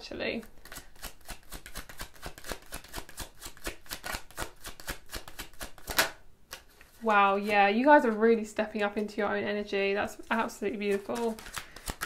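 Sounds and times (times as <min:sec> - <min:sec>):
cards being shuffled: 0:00.5 - 0:08.2, 0:10.1 - 0:12.0
snap of cards: 0:00.7 - 0:06.7, 0:11.2 - 0:12.0.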